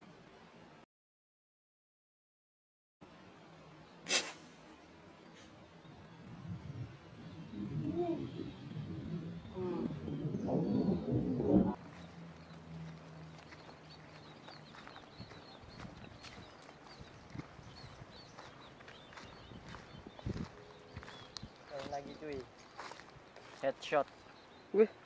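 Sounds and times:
faint birds chirping: 3.0 - 25.0
footsteps crunching on dry leaves: 11.8 - 24.4.

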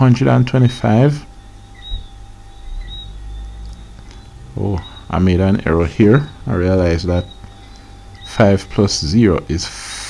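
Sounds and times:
low background hum and rumble: 0.0 - 10.0
faint high chirps: 1.3 - 8.8.

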